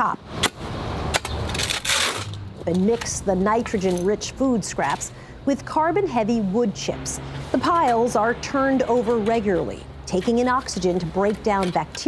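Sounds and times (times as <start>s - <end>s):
shovel scraping into wood chips: 1.5s - 2.3s.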